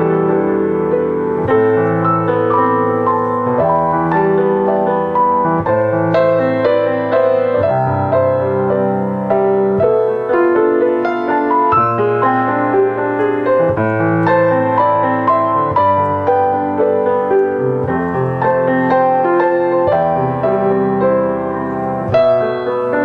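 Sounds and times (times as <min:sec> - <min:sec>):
slow piano chords: 0:00.0 - 0:23.0.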